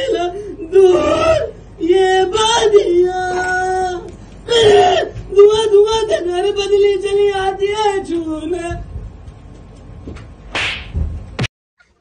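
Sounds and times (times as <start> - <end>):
quick whip-like swish: 10.5 - 11.0.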